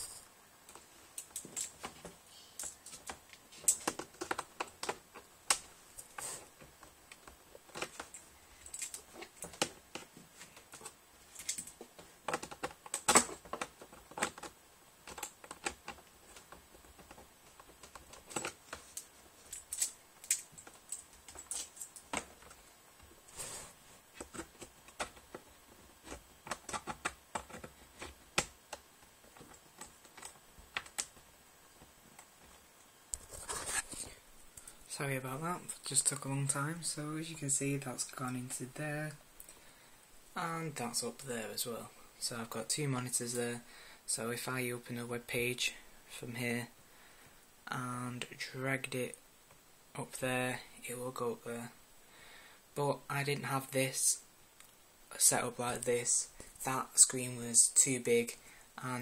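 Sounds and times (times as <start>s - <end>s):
laptop keyboard typing: 10.8s - 22.6s.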